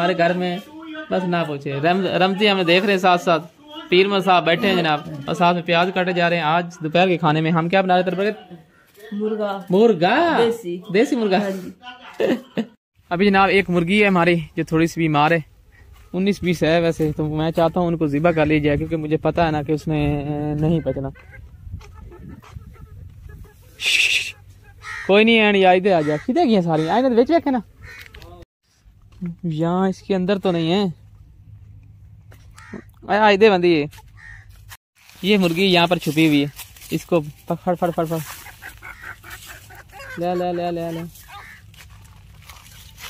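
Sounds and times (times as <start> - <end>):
chicken squawking: 20.6 - 28.4, 34.0 - 34.7, 38.0 - 41.8
dry twigs and leaves rustling: 34.1 - 43.0.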